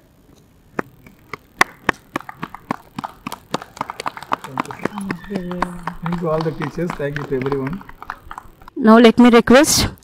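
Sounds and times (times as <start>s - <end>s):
people clapping: 1.6s - 9.1s.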